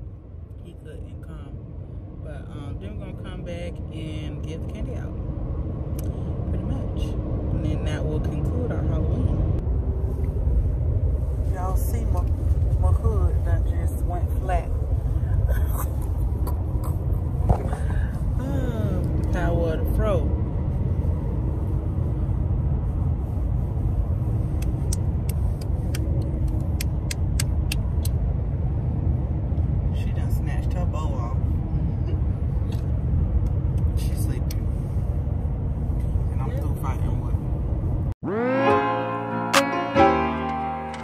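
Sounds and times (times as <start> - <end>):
road and engine rumble in car: 0.0 - 41.0.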